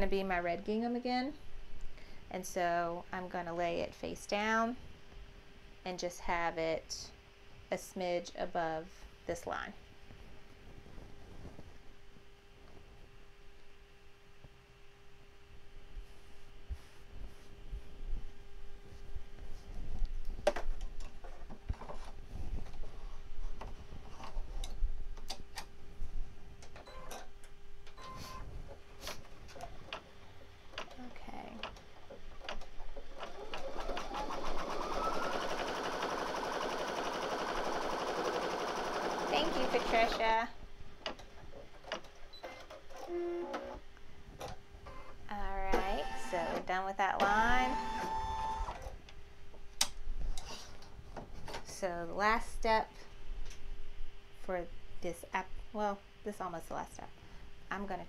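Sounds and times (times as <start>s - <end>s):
embroidery machine stitching: 33.0s - 40.2s.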